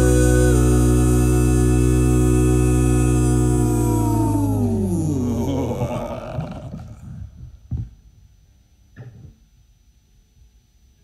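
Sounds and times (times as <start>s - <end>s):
band chord sliding down in pitch: 0.0s - 5.3s.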